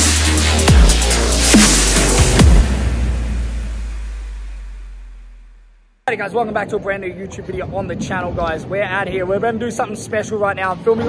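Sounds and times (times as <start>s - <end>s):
electronic music sting: 0.0s - 5.6s
deep bass rumble: 0.0s - 6.0s.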